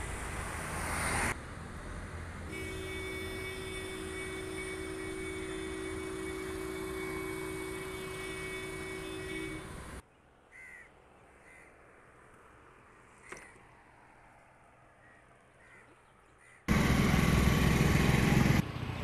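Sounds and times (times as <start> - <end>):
road traffic: 0.0 - 19.0
crow cawing: 10.5 - 11.8, 15.0 - 16.7.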